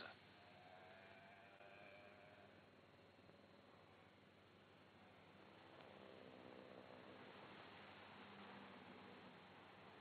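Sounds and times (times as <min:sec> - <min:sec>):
faint film soundtrack hiss: 0:00.0 - 0:10.0.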